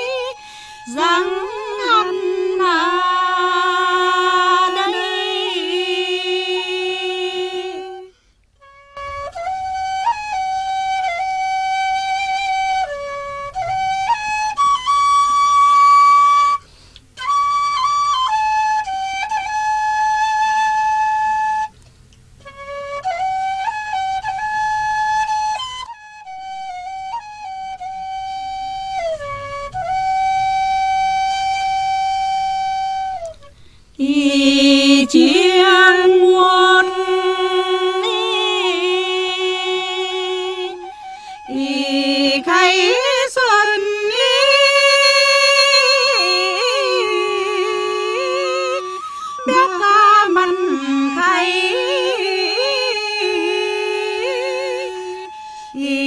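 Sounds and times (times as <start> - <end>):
flute-like wind instrument melody: 0.0 - 56.0.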